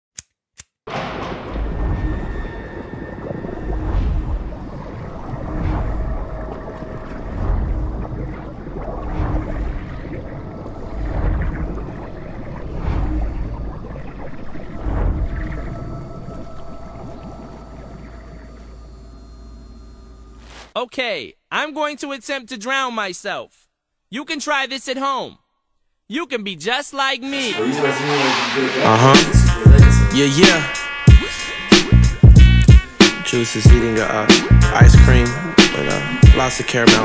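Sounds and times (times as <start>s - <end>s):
deep slow pulse: 0.9s - 20.4s, 28.2s - 30.2s, 34.5s - 36.5s
dark watery drone: 1.0s - 20.6s, 27.4s - 37.0s.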